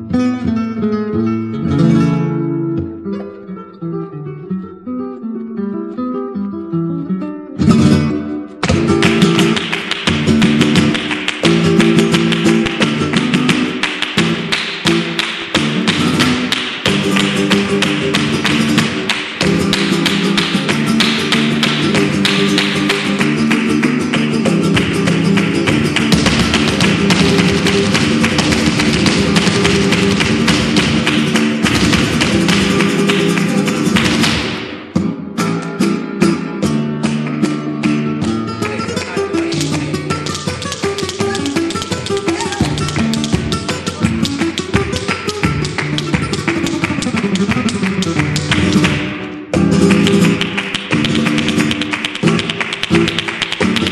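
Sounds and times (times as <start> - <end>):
flamenco guitar: 0.0 - 53.9
footwork taps: 24.7 - 34.6.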